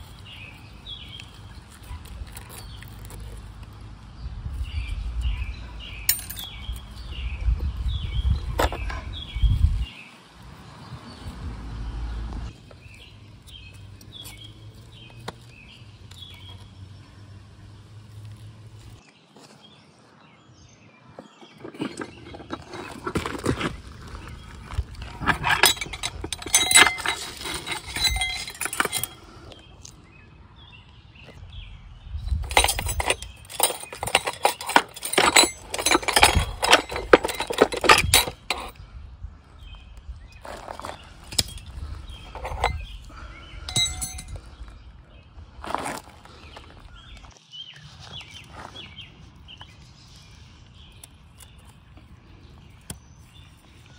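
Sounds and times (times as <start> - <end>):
metal parts clinking: 6.0 - 7.0, 21.5 - 24.2, 24.9 - 29.6, 32.3 - 38.8, 40.4 - 44.5.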